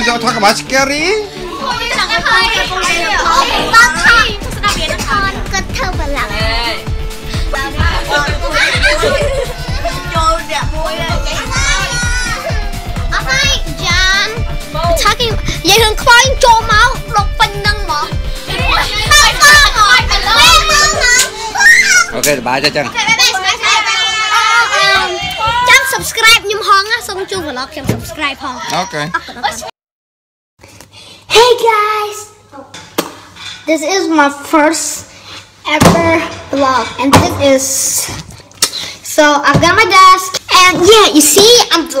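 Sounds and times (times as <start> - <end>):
music with deep thumping beat: 1.7 - 21.2
children shouting and squealing: 7.6 - 14.3, 18.4 - 22.2, 22.9 - 27.7
girls laughing: 7.8 - 10.2
girls chanting: 18.2 - 21.9.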